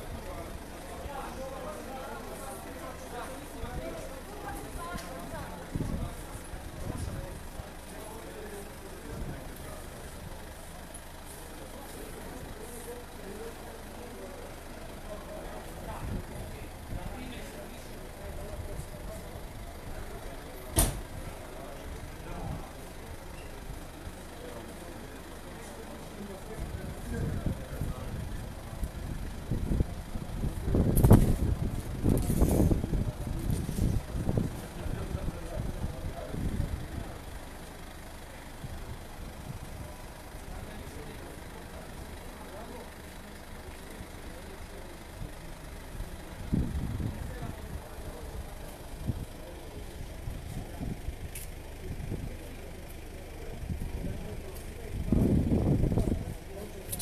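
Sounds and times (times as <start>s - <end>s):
van engine idling: 0.0s - 57.0s
voices of people nearby: 0.0s - 57.0s.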